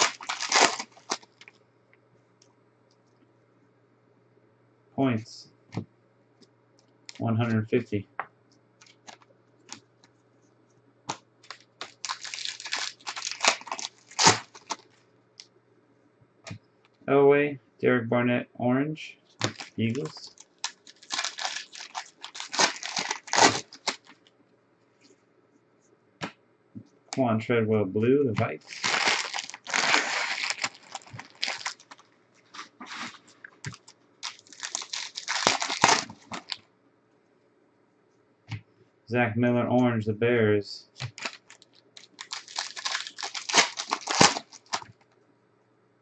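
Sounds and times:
foil wrapper tearing and crinkling: 0:00.0 - 0:01.5, 0:11.4 - 0:14.9, 0:19.4 - 0:24.2, 0:28.6 - 0:36.6, 0:41.0 - 0:44.9.

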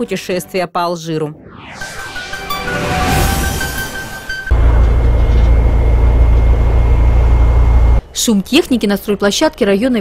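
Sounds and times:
heavy machinery engines rumbling: 0:04.5 - 0:08.1.

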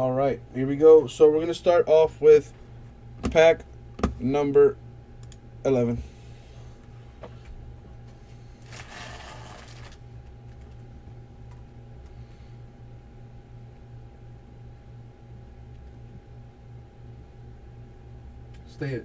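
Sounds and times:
low electrical hum: 0:00.0 - 0:19.0
foil packs rustling: 0:08.6 - 0:10.0.

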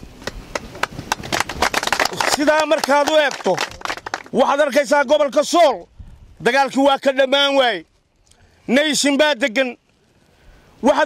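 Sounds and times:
men clapping: 0:00.0 - 0:04.6.

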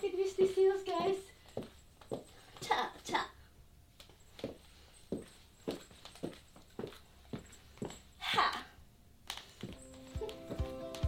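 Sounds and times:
high heels on wooden floor: 0:00.8 - 0:03.2, 0:04.0 - 0:08.2, 0:09.3 - 0:11.0.

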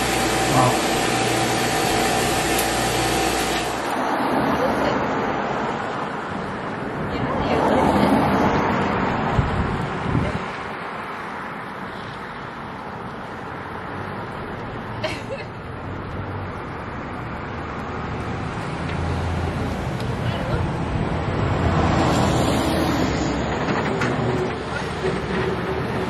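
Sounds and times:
motor hum: 0:00.0 - 0:04.0
street traffic noise: 0:00.0 - 0:26.0
vehicle passing: 0:03.7 - 0:10.9, 0:15.7 - 0:26.0.

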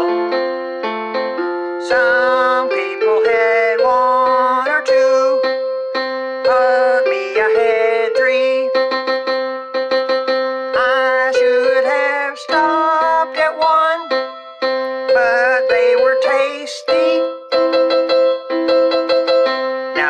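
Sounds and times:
electric keyboard: 0:00.0 - 0:20.0
man singing: 0:01.8 - 0:05.5, 0:06.4 - 0:08.9, 0:10.8 - 0:14.2, 0:15.1 - 0:17.4.

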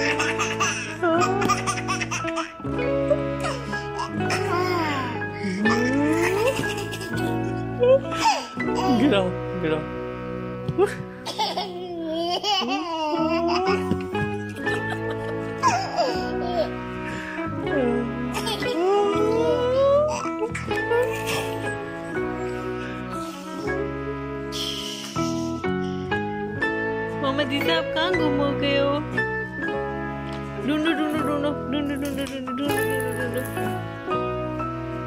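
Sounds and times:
toddler giggling: 0:00.0 - 0:09.1, 0:11.2 - 0:16.8, 0:18.3 - 0:21.8
background music with held tones: 0:00.0 - 0:35.0.

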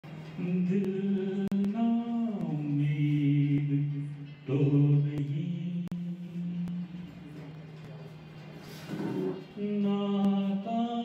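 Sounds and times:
man singing into microphone: 0:00.3 - 0:07.4, 0:09.2 - 0:11.0.

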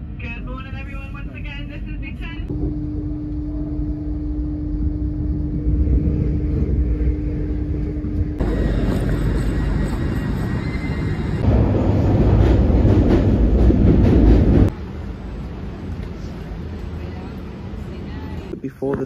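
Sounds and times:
station platform ambience: 0:00.0 - 0:19.0
train interior rumble and hum: 0:00.0 - 0:19.0.

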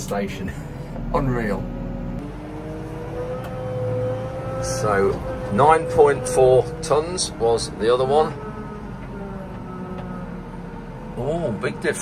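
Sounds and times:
diesel engine running from inside cab: 0:00.0 - 0:12.0.

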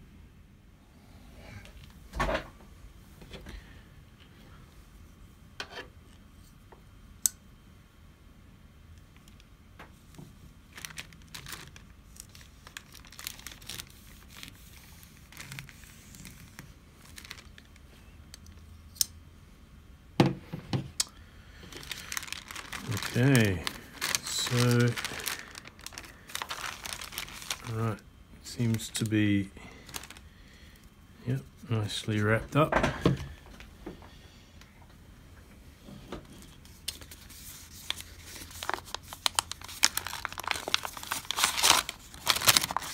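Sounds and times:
plastic satchel crinkling: 0:10.7 - 0:17.8, 0:21.6 - 0:29.1, 0:29.8 - 0:30.2, 0:36.9 - 0:42.9.

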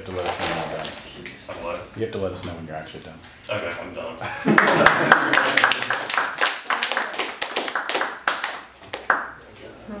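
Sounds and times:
small group clapping: 0:04.4 - 0:09.4.

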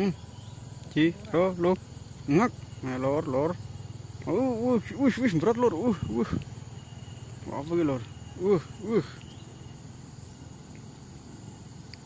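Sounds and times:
insect chirring: 0:00.0 - 0:12.0
man speaking: 0:00.9 - 0:03.6, 0:04.2 - 0:06.4, 0:07.4 - 0:09.2.

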